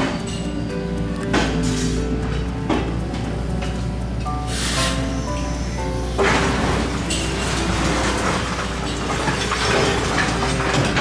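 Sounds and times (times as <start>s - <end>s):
train wheels clattering on rails: 0.0s - 11.0s.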